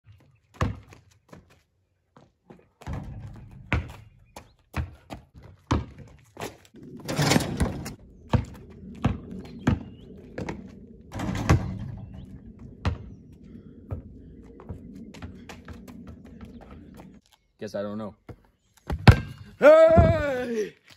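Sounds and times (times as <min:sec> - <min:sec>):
basketball bouncing on concrete: 0:00.5 - 0:01.1, 0:02.8 - 0:06.2, 0:08.3 - 0:10.6, 0:18.3 - 0:19.4.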